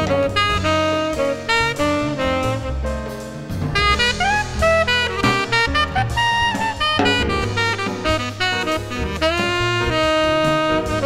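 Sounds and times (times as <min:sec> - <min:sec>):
bass: 0:00.0 - 0:11.0
drum kit: 0:00.0 - 0:11.0
saxophone melody: 0:00.0 - 0:11.0.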